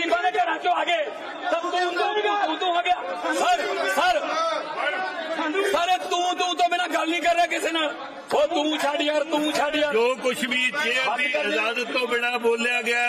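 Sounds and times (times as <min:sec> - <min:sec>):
men arguing loudly: 0:00.0 - 0:13.0.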